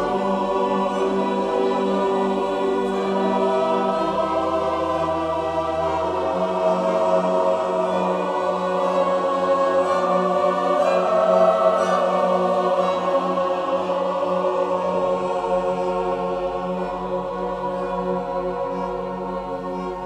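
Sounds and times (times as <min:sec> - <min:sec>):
choir singing sacred music: 0:00.0 - 0:20.0.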